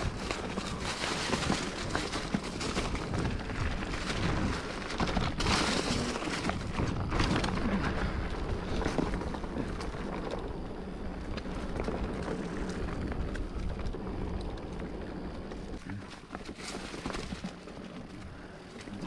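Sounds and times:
bike rattling over rough trail: 0.0s - 19.0s.

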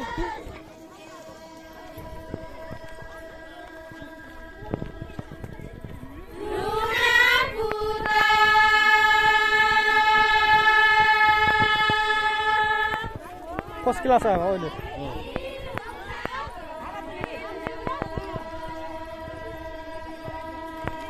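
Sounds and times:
women singing folk song: 0.0s - 13.8s, 14.8s - 21.0s.

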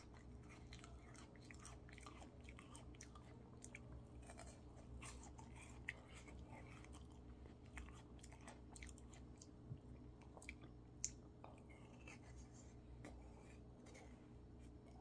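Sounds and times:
chewing: 0.0s - 15.0s
low steady hum: 0.0s - 15.0s
wet smacks and sucks licking fingers: 10.3s - 11.3s.

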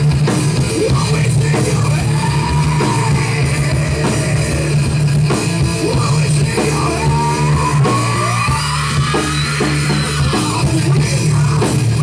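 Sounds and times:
distorted guitars: 0.0s - 12.0s
drums: 0.0s - 12.0s.

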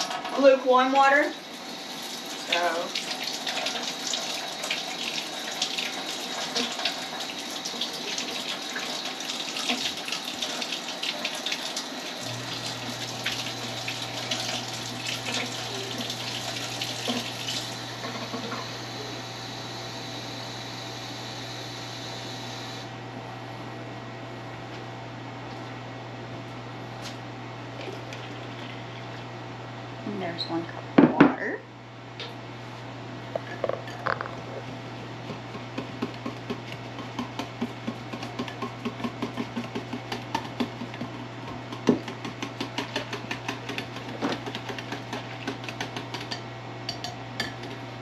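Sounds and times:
faucet water running into cup: 0.0s - 22.8s.

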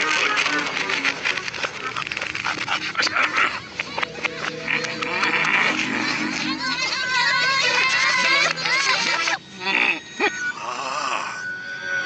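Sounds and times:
reversed creature calls: 1.6s - 12.0s.

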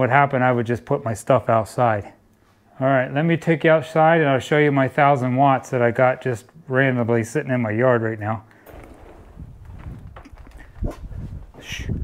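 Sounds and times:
footsteps on wooden deck: 8.7s - 11.6s
low rumble: 8.7s - 12.0s.

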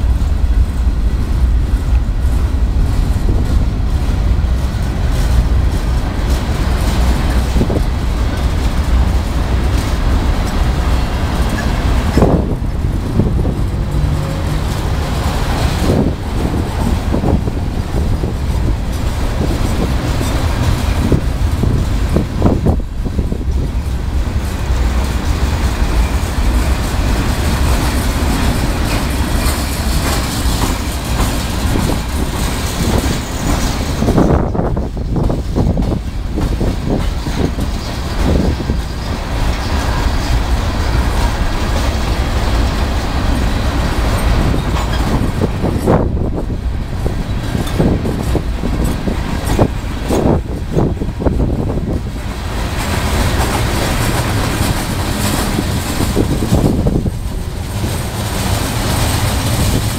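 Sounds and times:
train wheels rumbling on rail: 0.0s - 59.9s
wind buffeting microphone: 0.0s - 59.9s.

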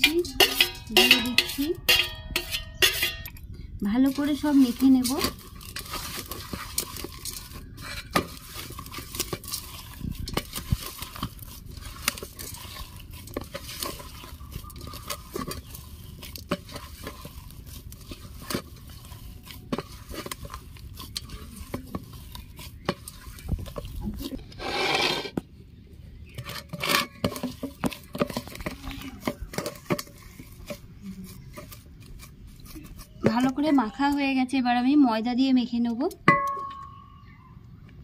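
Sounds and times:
fingers knocking on metal bowl: 0.0s - 3.4s
hand mushing potato filling: 0.0s - 24.7s, 25.4s - 36.3s.

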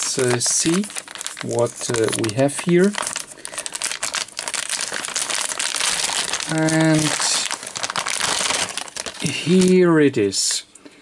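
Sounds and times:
plastic bag crinkling: 0.0s - 10.1s.

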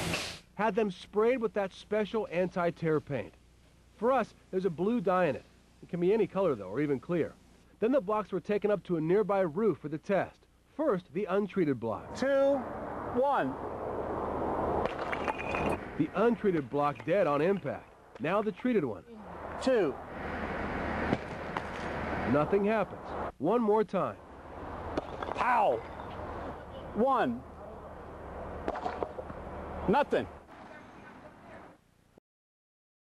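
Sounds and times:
street and traffic noise: 11.8s - 31.9s
block landing on pavement: 14.8s - 15.8s.

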